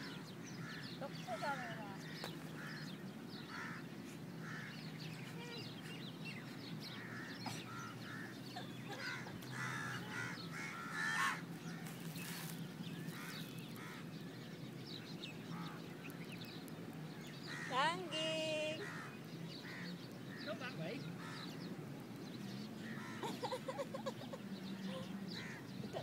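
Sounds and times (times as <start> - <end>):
birds chirping: 0.0 - 26.0.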